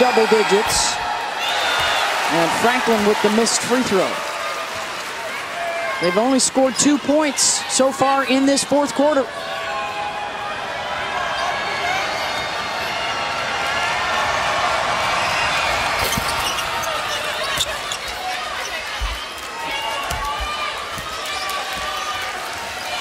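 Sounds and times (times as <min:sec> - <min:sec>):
crowd voices in arena: 0:00.0 - 0:23.0.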